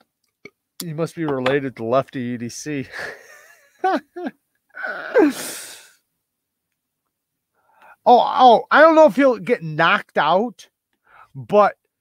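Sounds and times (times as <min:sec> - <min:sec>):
man's breathy laughing sigh: 0:02.9 - 0:06.0.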